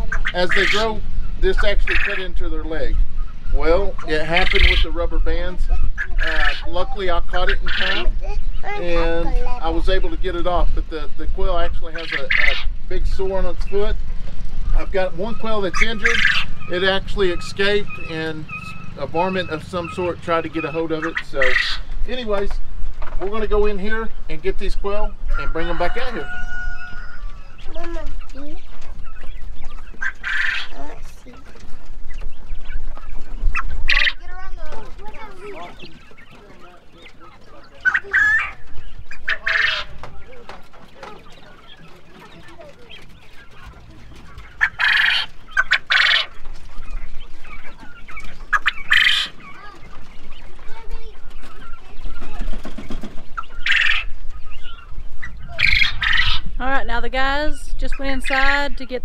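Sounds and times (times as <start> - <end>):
quail calling: 0.0 - 59.0.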